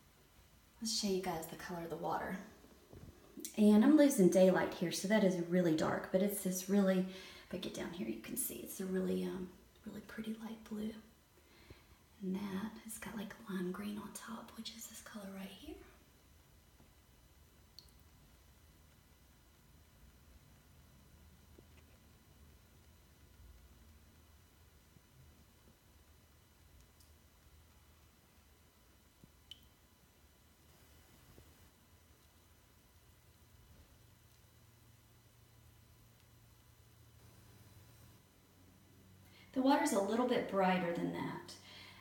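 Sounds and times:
faint low hum: 0.0s - 42.0s.

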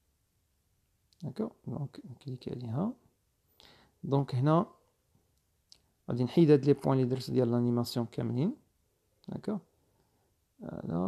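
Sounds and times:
man speaking: 1.2s - 3.1s, 4.0s - 4.8s, 6.0s - 9.7s, 10.6s - 11.0s.

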